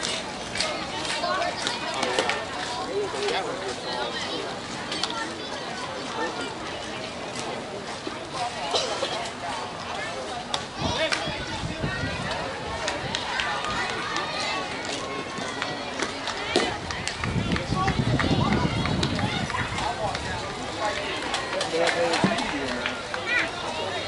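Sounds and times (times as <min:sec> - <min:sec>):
spectators talking and calling out: 0:00.0 - 0:24.0.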